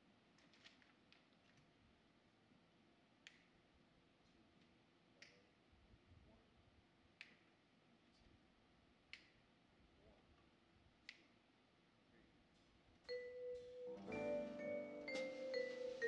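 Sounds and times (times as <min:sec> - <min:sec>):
faint finger snaps: 0:03.2 - 0:03.6, 0:05.2 - 0:05.5, 0:07.2 - 0:08.3, 0:09.1 - 0:09.4, 0:11.0 - 0:11.4.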